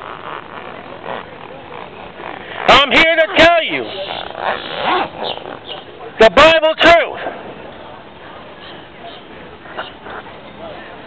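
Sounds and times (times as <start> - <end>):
outdoor background noise: 0.0 - 11.0.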